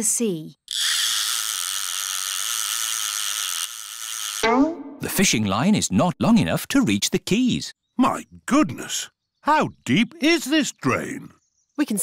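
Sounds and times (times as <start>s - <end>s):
fishing reel whirring buzz: 0.7s - 4.4s.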